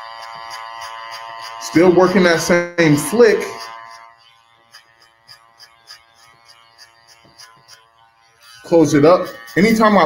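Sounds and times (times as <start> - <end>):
clipper ticking through hair: 0.0 - 10.0
electric hair clipper buzzing: 0.0 - 10.0.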